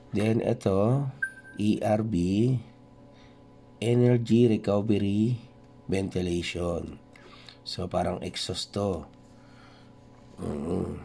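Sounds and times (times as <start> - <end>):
faint steady hum: 0.0 - 11.0
man's vocal hesitation: 10.4 - 11.0.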